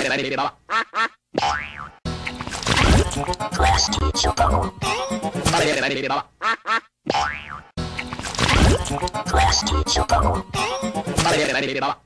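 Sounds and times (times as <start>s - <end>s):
music with cartoonish vocal noises: 1.4s - 12.0s.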